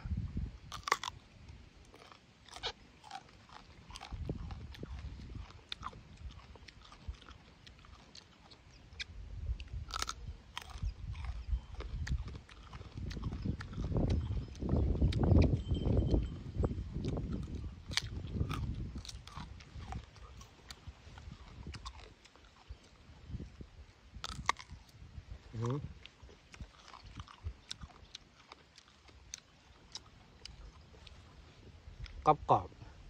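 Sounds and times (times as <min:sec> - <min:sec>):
crunching and chewing fruit: 0:00.4 - 0:33.0.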